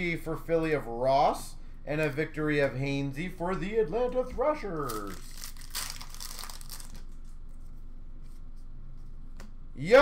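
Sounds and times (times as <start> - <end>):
wrapper tearing and crinkling: 4.8 - 7.2.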